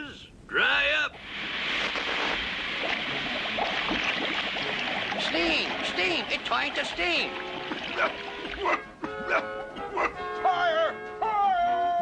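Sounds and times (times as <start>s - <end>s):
cartoon water hissing: 1.2s - 8.8s
bubbling pops: 1.2s - 9.2s.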